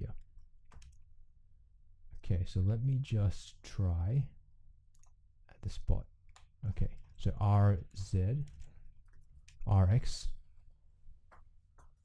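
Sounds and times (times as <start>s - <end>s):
computer mouse clicks: 0.2s - 1.0s, 4.9s - 5.2s.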